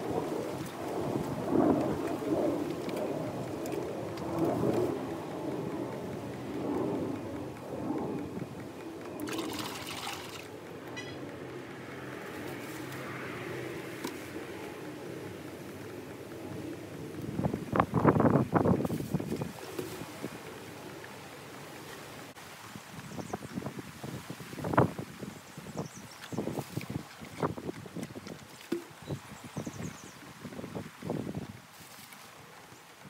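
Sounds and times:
water sloshing in basins: 9.2 - 11.2
water splashing: 9.2 - 11.2, 26.2 - 29.6.

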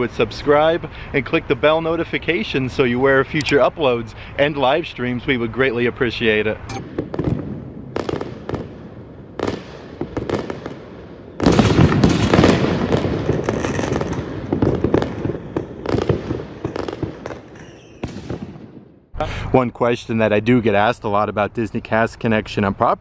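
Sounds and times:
fireworks bangs and crackling: 6.8 - 19.1.

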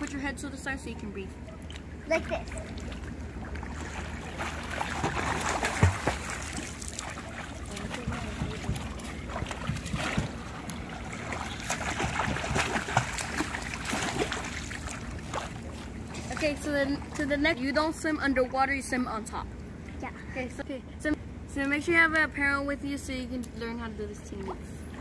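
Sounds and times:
water splashing from swimming: 0.0 - 19.0.

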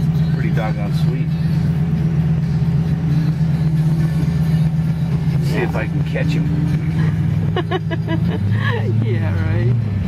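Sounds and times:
car engine droning: 0.0 - 10.0
person laughing: 6.9 - 9.0.

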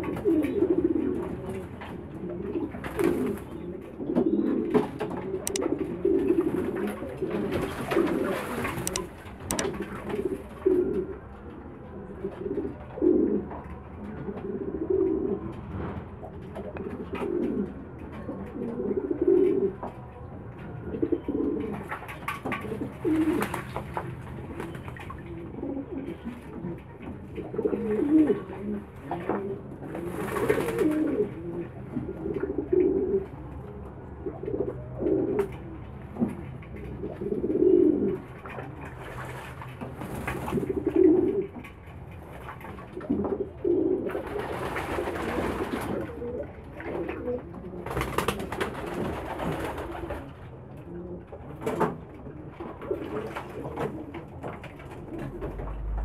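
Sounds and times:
pigeons cooing: 0.0 - 20.2, 20.8 - 56.0
wings flapping and water splashing: 2.7 - 3.6, 4.8 - 10.7, 21.7 - 25.6, 29.8 - 31.2, 38.2 - 50.4, 52.7 - 56.0.

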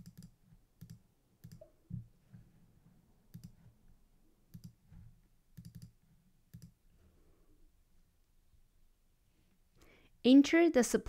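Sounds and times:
computer mouse clicks: 0.0 - 1.7, 3.3 - 3.6, 4.5 - 4.8, 5.6 - 6.8.

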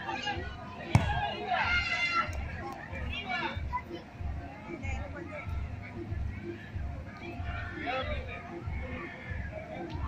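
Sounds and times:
adults talking: 0.0 - 10.0
children calling and chattering: 0.0 - 10.0.

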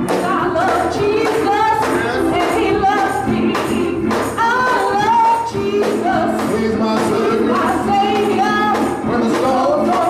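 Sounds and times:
choir singing gospel song: 0.0 - 10.0
instrumental accompaniment: 0.0 - 10.0.

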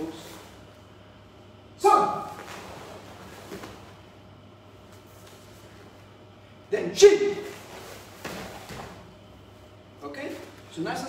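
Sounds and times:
faint movement sounds: 0.0 - 11.0
loud karate shout: 1.8 - 2.5.

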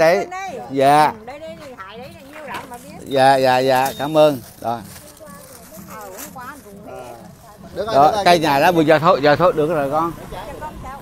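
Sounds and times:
faint conversational speech: 0.0 - 11.0
loud talking: 0.0 - 11.0.

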